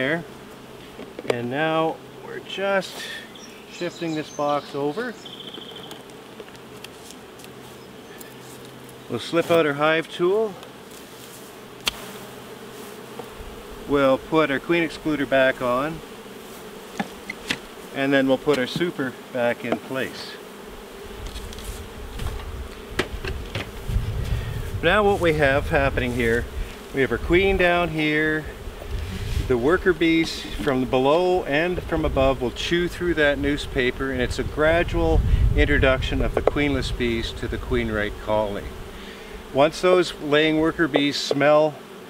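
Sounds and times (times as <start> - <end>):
bees buzzing: 0.0 - 42.0.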